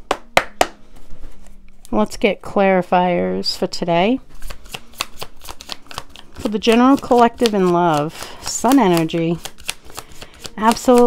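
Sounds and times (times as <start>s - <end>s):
cards being shuffled: 4.3s - 11.0s.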